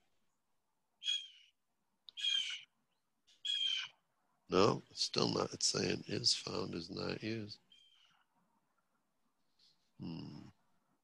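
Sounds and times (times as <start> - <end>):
bird calling: 1.0 - 1.5, 2.1 - 2.7, 3.3 - 3.9.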